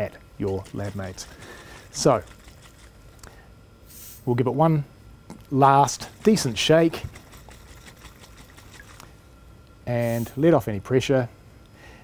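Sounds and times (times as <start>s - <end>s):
liquid sloshing in glass funnel: 0.4s - 3.2s, 5.8s - 9.2s.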